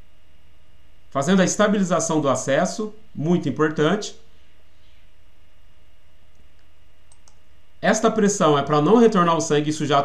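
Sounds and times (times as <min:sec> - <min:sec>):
faint short clicks: 0:06.3 - 0:07.4.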